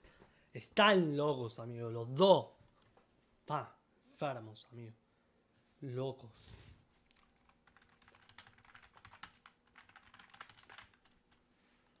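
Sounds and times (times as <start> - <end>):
typing on computer keyboard: 7.1 - 12.0.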